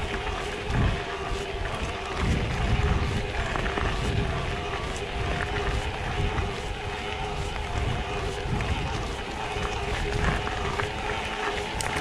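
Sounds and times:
bike clicks and rattles: 0.0 - 12.0
bike drive whine: 0.0 - 12.0
wind and tyres rumbling: 0.0 - 12.0.

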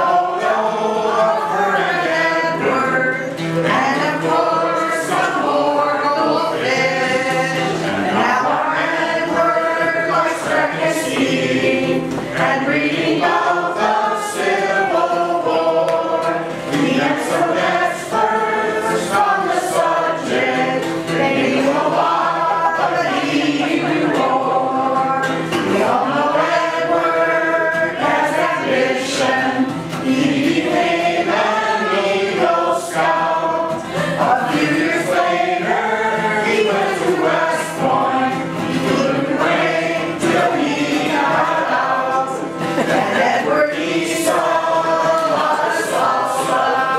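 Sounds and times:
acoustic guitar: 0.0 - 46.9
group singing together: 0.0 - 46.9.

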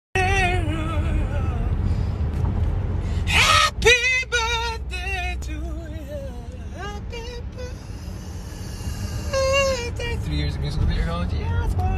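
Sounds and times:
car cabin rumble: 0.2 - 11.9
woman singing wordless phrases: 11.4 - 11.9.

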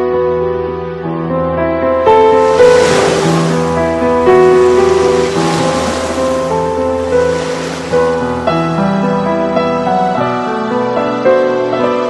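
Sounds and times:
slow background music: 0.0 - 12.0
sea waves breaking: 2.2 - 8.9.

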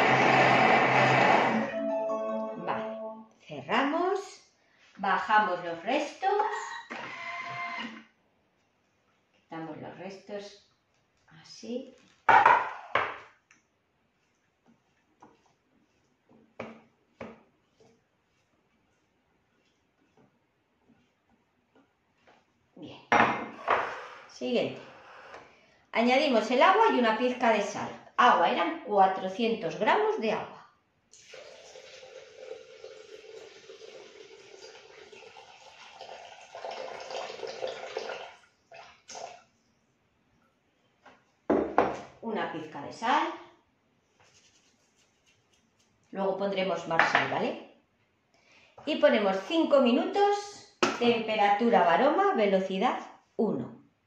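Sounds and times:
water pouring into metal bowl: 31.2 - 39.4.

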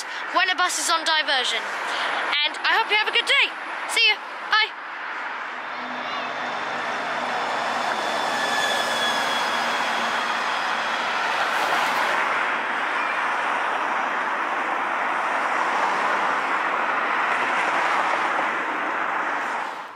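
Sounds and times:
bus passing with high whine: 0.0 - 19.9
car engines and tyres on road: 3.0 - 19.9.

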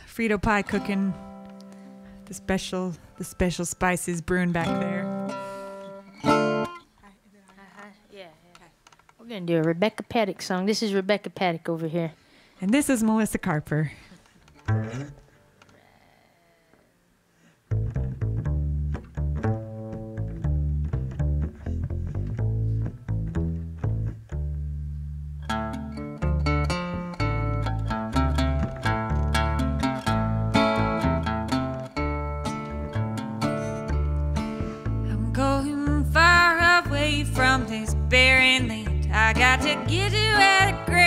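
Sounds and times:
acoustic guitar: 0.0 - 7.1, 12.8 - 15.8, 17.4 - 41.0
plucked double bass: 4.4 - 6.8, 14.6 - 15.4, 17.7 - 41.0.

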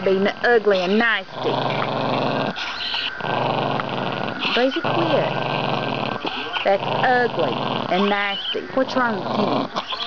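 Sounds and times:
dog growling low: 0.0 - 10.0.

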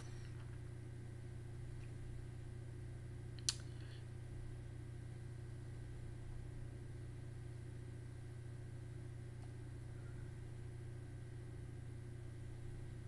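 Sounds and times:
low room hum: 0.0 - 13.0
sharp click: 3.4 - 3.8.

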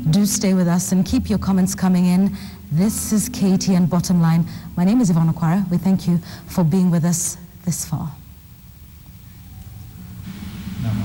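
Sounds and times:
faint hiss: 0.0 - 11.0
low steady hum: 0.0 - 11.0.

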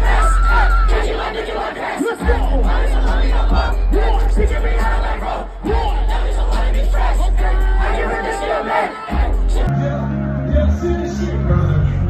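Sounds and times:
heavy bass from sound system: 0.0 - 1.1, 2.2 - 8.0, 9.2 - 12.0
concert crowd shouting and cheering: 0.0 - 12.0.

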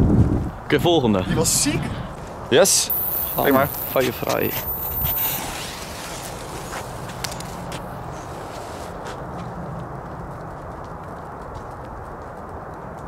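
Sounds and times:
outdoor background noise: 0.0 - 13.0
footsteps on asphalt: 4.5 - 13.0.

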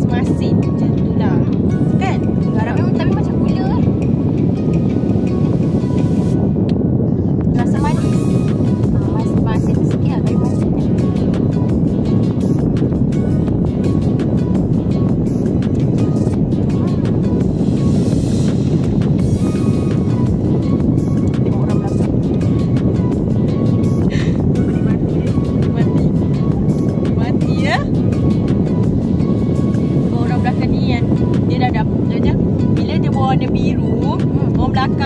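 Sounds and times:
car air conditioning blower: 3.5 - 25.8.

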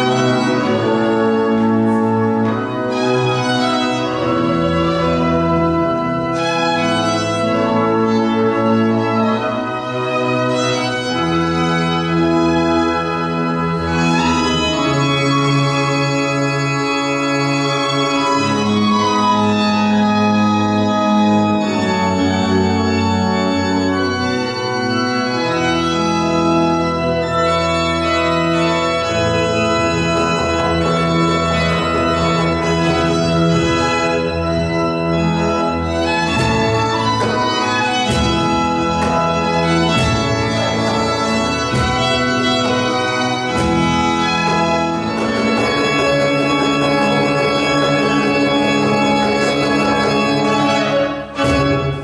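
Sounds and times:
pipe organ chords: 0.0 - 52.0
violin playing: 28.9 - 52.0.

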